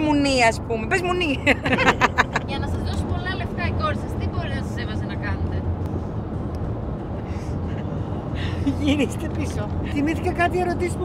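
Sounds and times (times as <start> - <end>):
woman's voice: 0.0 - 2.8, 8.5 - 11.0
car cabin road and engine rumble: 0.0 - 11.0.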